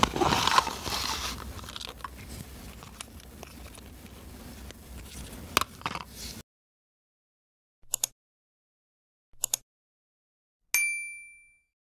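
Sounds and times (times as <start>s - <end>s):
notification bell ding: 10.8s - 11.7s.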